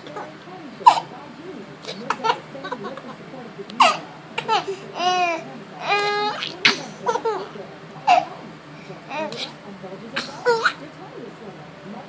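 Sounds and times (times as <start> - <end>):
baby laughing: 1.8 - 3.2, 3.8 - 8.4.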